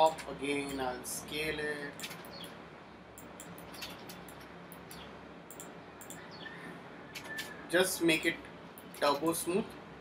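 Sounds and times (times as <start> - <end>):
computer mouse clicks: 2.0 - 2.6, 3.2 - 6.4.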